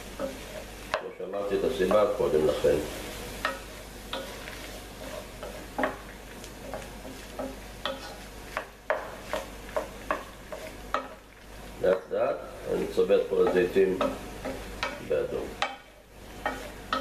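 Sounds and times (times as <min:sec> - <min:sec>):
food sizzling in a pan: 0:00.0 - 0:17.0
wooden spoon scraping a pan: 0:00.0 - 0:17.0.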